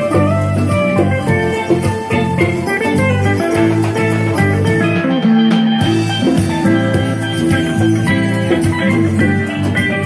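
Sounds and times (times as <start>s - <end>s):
drum kit: 0.0s - 10.0s
electric guitar: 0.0s - 10.0s.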